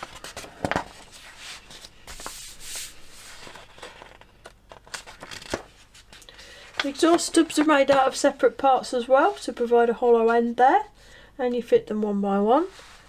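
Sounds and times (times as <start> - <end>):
paper rustling and crinkling: 0.0 - 6.2.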